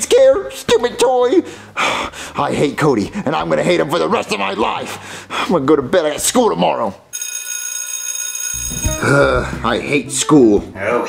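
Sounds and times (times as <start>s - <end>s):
bell ringing: 7.1s - 9.3s.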